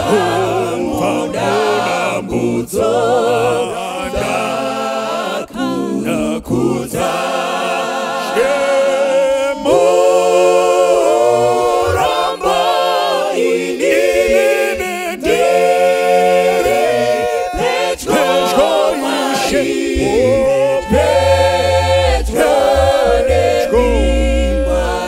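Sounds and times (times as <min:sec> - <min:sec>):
a cappella group singing: 0:00.0 - 0:25.0.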